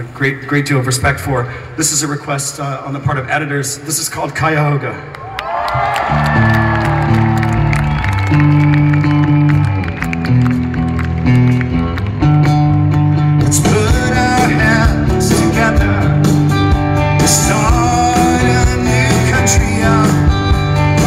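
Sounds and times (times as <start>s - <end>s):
electric guitar: 5.6s - 21.0s
bass notes: 5.8s - 21.0s
rock band playing live: 5.8s - 21.0s.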